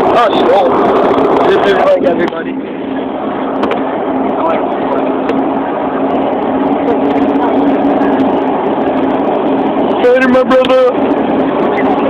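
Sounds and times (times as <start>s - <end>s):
car road and wind noise: 0.0s - 12.0s
steady low hum: 0.0s - 12.0s.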